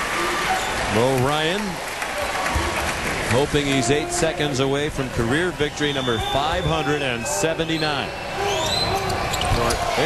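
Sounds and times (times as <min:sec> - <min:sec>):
arena crowd din: 0:00.0 - 0:10.0.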